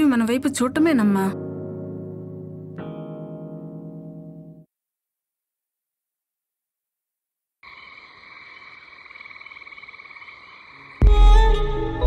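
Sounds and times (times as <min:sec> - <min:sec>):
frogs croaking: 0:07.6 - 0:11.1
orchestral music with strings: 0:11.0 - 0:12.0.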